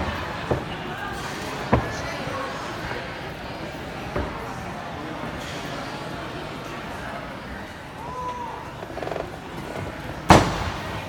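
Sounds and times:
loud sharp bang echoing: 10.3s - 11.0s.

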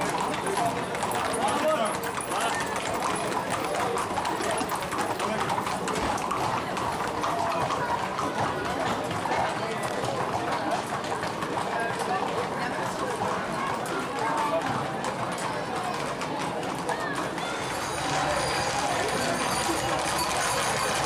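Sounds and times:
hooves clip-clopping on pavement: 0.0s - 21.0s
people talking: 0.0s - 21.0s.

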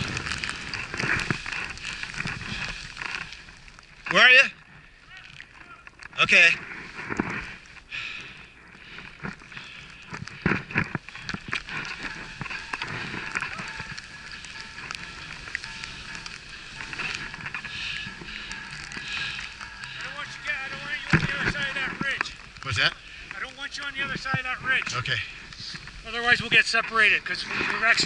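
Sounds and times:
wind on microphone: 0.0s - 3.3s.

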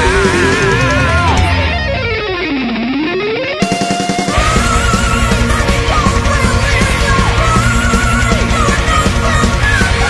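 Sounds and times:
heavy metal electric guitar: 0.0s - 10.0s.

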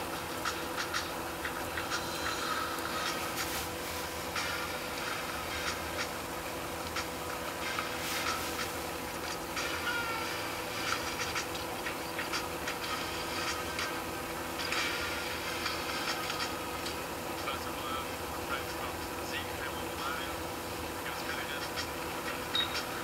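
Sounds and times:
steady electrical hum: 0.0s - 23.0s.

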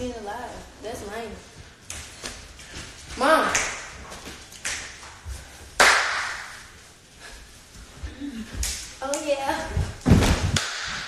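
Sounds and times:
loud sharp hand smack: 5.8s - 6.5s.

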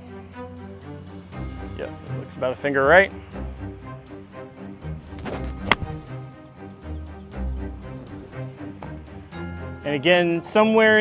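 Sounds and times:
background music: 0.0s - 11.0s
golf club swish: 5.1s - 6.2s
golf club striking ball: 5.1s - 6.3s.

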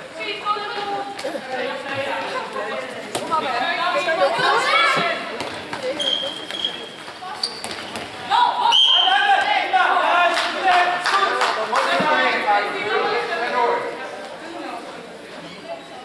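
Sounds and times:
ball bouncing on hall floor: 4.9s - 8.3s
short whistle blasts: 8.7s - 9.1s.

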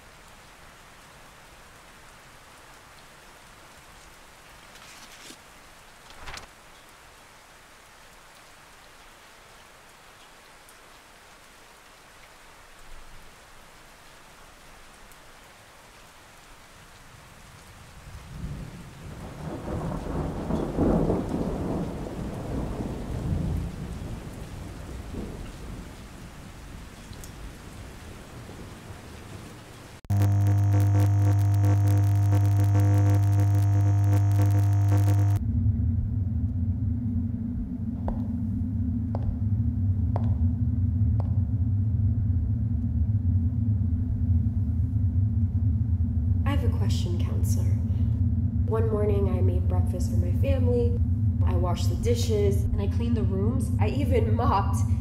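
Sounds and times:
soft rain: 0.0s - 35.4s
thunder rumble: 18.0s - 26.8s
loud low droning hum: 30.1s - 52.1s.

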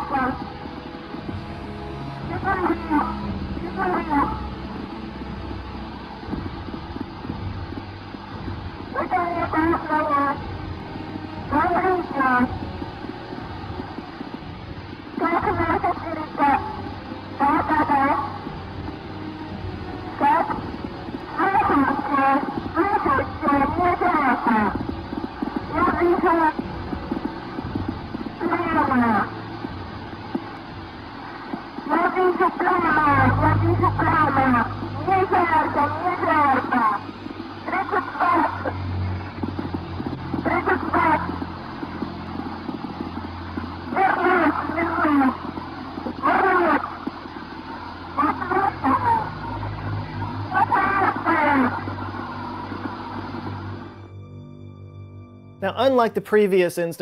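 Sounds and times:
low hum: 0.0s - 55.6s
clicking static: 2.2s - 54.3s.

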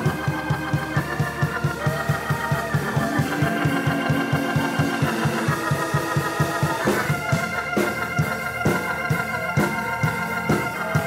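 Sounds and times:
fast low beat: 0.0s - 11.0s
sustained keyboard chords: 0.0s - 11.0s.

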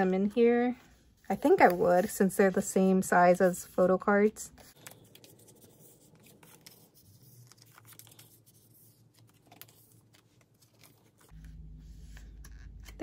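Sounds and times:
low hum: 11.3s - 13.0s.

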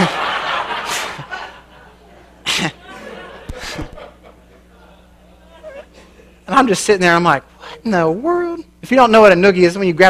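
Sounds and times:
audience laughter: 0.0s - 6.4s
short breathy laughs: 2.4s - 4.2s.

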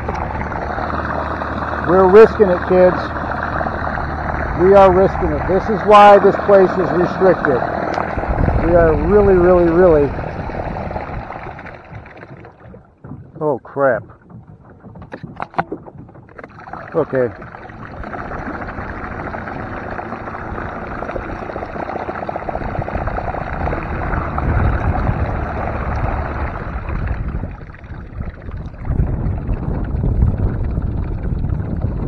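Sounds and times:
propeller churning muddy water: 0.0s - 32.0s
knocks against plastic hull: 11.9s - 17.7s.

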